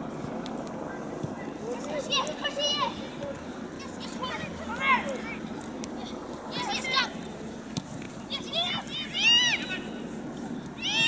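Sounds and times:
children shouting: 0:08.3 - 0:09.9, 0:10.8 - 0:11.0.

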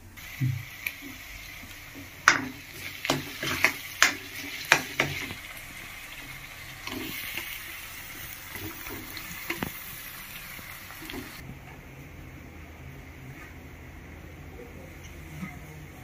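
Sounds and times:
food sizzling in pan: 0:00.2 - 0:11.4
metal ladle scraping metal pan: 0:02.3 - 0:05.4.

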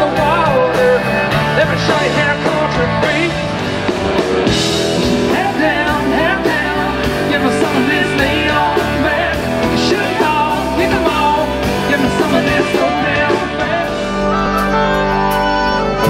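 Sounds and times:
live country-rock band playing: 0:00.0 - 0:16.0.

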